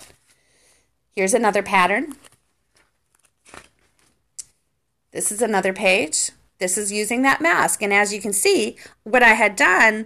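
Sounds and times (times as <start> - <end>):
paper pages being turned: 0.0 - 0.4, 2.0 - 4.3.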